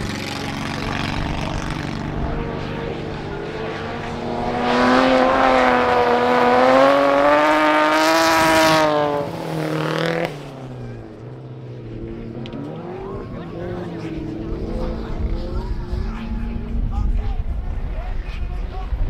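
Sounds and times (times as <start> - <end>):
distant race engines: 0.0 - 19.0
race car engine at full throttle: 0.0 - 19.0.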